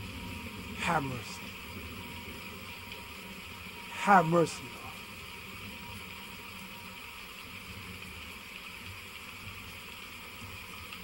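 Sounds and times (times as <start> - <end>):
low hiss and hum: 0.0 - 11.0.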